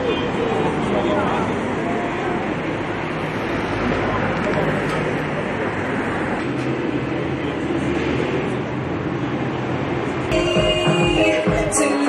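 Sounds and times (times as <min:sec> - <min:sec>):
traffic rumble: 0:00.0 - 0:11.8.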